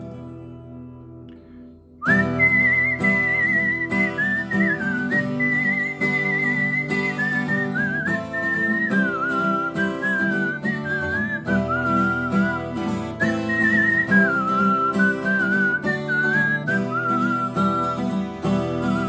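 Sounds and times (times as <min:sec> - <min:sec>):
strummed acoustic guitar: 0:00.0 - 0:19.0
man whistling a melody: 0:02.0 - 0:19.0.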